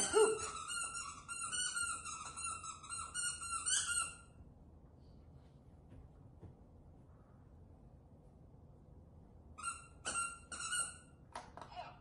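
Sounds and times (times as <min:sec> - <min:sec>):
squeaky dog toy squeaking: 0:00.0 - 0:04.4, 0:09.6 - 0:11.2.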